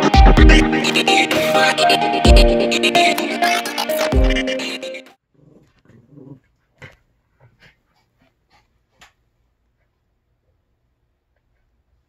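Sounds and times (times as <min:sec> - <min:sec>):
dogs growling: 0:05.3 - 0:07.0.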